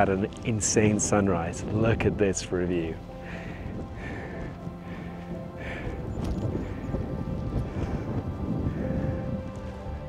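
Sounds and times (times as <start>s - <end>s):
background music with held tones: 0.0s - 10.0s
wind buffeting microphone: 0.0s - 10.0s.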